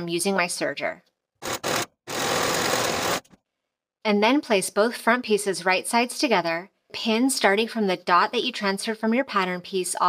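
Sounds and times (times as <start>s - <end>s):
overlock machine running: 1.4s - 3.3s.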